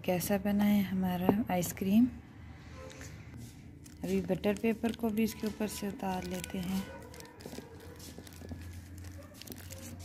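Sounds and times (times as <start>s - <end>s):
paper crinkling: 3.7s - 10.0s.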